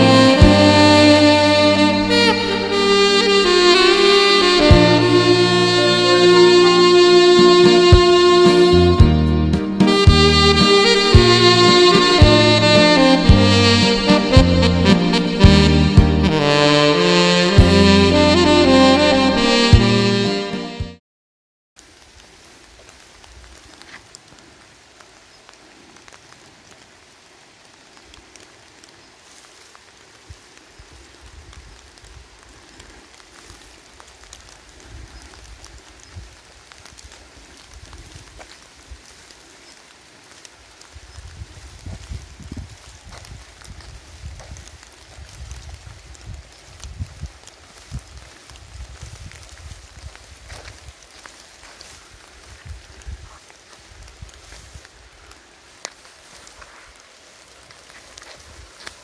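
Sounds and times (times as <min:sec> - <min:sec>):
light rain falling: 0:00.0 - 0:19.4, 0:21.8 - 0:59.0
raindrops ticking: 0:21.8 - 0:59.0.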